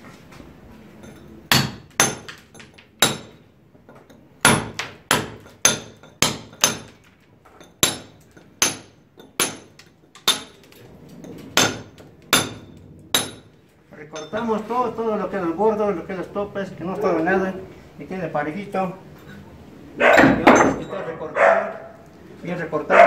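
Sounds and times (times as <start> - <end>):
hammer striking chisel on concrete: 1.0 - 7.0, 7.6 - 10.6.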